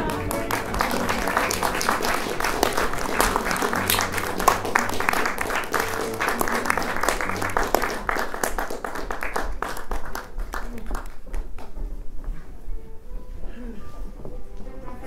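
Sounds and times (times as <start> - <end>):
music playing: 0.0 - 8.7
audience applauding: 0.0 - 11.8.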